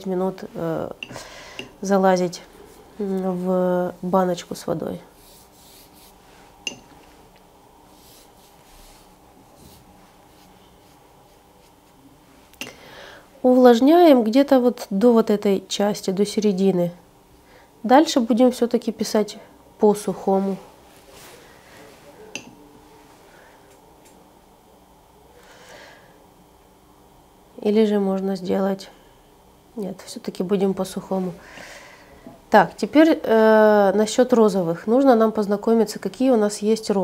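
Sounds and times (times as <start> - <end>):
wet brush on paper: 5.1 - 6.5, 7.9 - 12.0.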